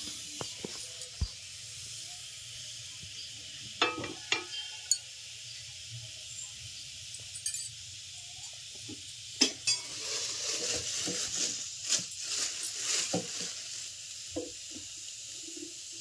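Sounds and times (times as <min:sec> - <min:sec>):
water sizzling on hot pan: 0:00.0 - 0:16.0.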